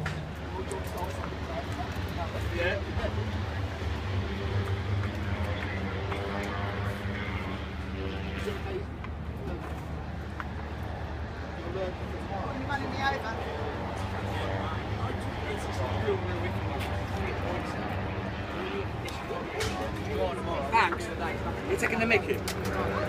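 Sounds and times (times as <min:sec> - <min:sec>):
indistinct voices talking: 0:00.0 - 0:23.0
low mechanical drone: 0:00.0 - 0:23.0.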